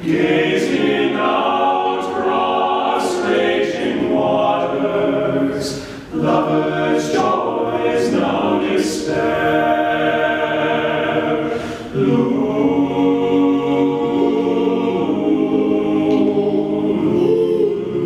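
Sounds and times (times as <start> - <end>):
men's a cappella choir singing: 0.0 - 18.0.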